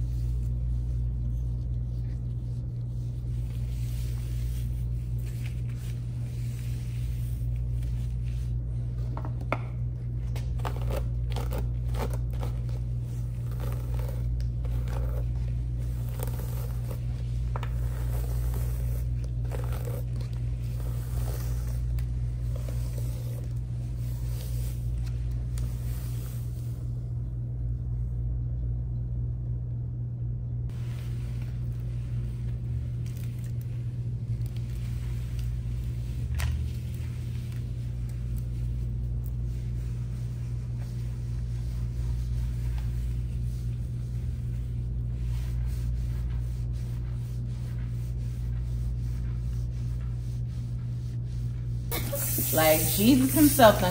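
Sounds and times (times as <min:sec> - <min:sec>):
steady low hum: 0:00.0 - 0:53.9
scalp scrubbing strokes: 0:02.0 - 0:08.6, 0:10.8 - 0:26.8, 0:33.1 - 0:53.9.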